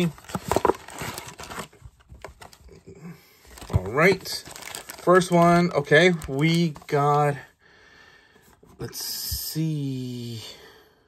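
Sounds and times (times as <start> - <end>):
cardboard box being torn open: 0.0 - 1.7.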